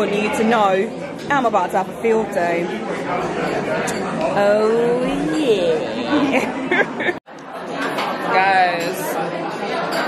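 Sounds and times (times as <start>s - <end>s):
chatter of diners: 0.0s - 10.0s.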